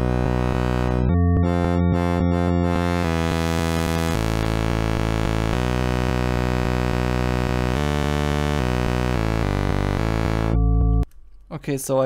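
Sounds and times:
buzzy synthesizer chords: 0.0 - 11.0.

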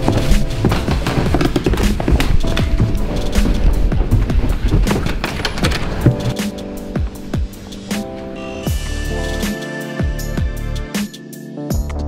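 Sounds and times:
music with fast percussive beat: 8.7 - 12.0.

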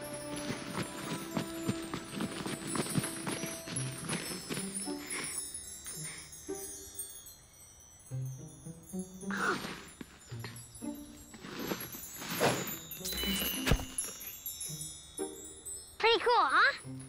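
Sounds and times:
soft background music: 0.0 - 17.0
sparkling tinkling chimes: 0.0 - 17.0.

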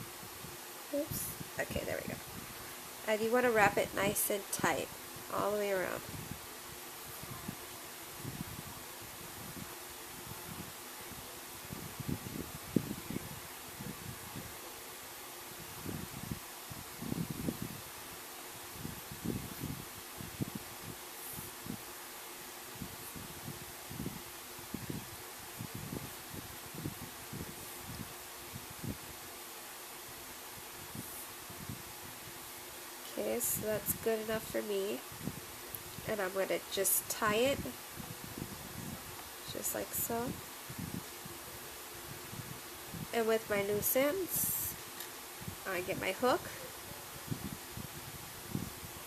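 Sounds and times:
faint steady hiss: 0.0 - 49.0.

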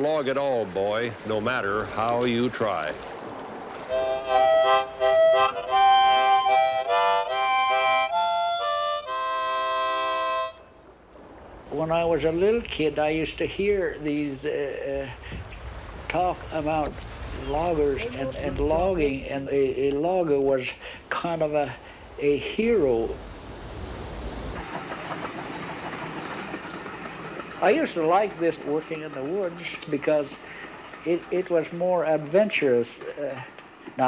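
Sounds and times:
thin hiss with faint clicks: 2.0 - 3.1, 15.2 - 19.2, 19.8 - 21.5
harmonica chord: 3.9 - 10.8
steady rumble: 10.6 - 28.9.

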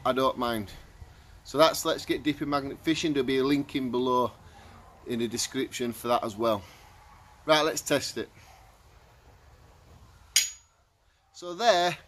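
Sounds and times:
high metallic ring: 10.4 - 10.7.

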